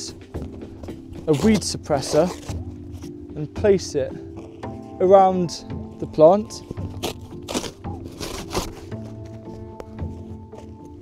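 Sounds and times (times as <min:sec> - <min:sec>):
soft background music: 0:00.0 - 0:11.0
cardboard sheets rustling and scraping: 0:00.4 - 0:03.2, 0:06.6 - 0:11.0.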